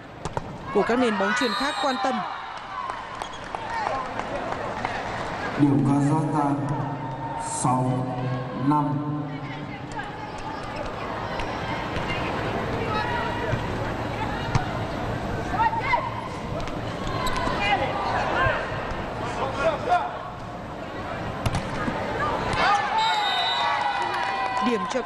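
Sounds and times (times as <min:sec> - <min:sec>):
crowd shouting and cheering: 0:00.0 - 0:20.4, 0:21.0 - 0:25.0
volleyball hits: 0:21.4 - 0:22.8.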